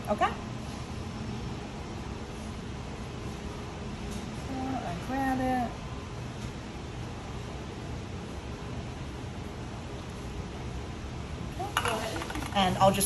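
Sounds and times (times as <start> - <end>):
room hiss and hum: 0.0 - 13.0.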